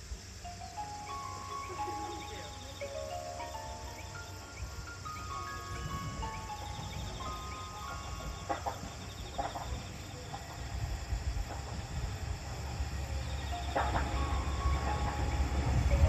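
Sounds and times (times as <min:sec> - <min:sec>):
steady low rumble: 0:00.1 - 0:16.0
chime-like train approach melody: 0:00.3 - 0:16.0.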